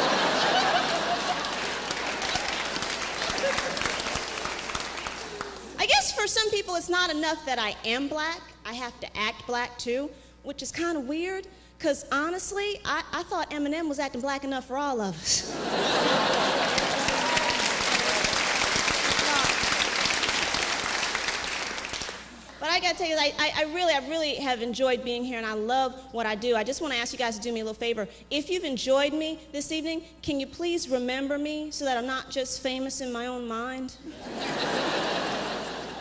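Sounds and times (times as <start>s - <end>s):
audience laughter: 0.0s - 4.3s, 15.5s - 18.2s, 34.1s - 36.0s
audience applauding: 0.0s - 5.8s, 16.0s - 22.4s.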